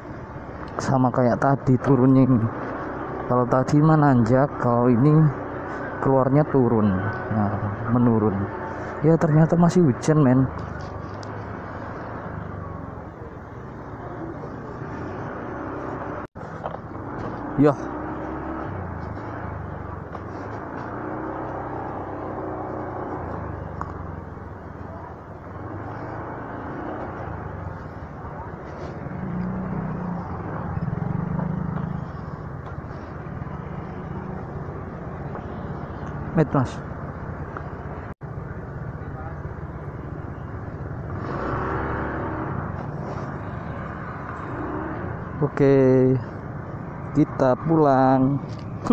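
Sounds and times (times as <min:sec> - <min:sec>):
motorcycle engine at low speed: 0:00.0 - 0:48.9.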